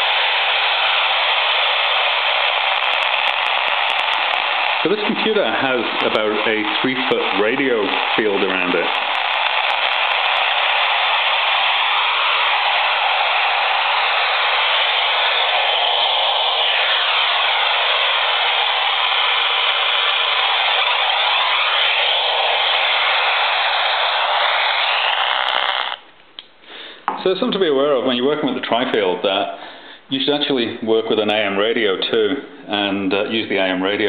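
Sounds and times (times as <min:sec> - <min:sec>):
radio static with warbling whistles: 0:00.0 - 0:26.1.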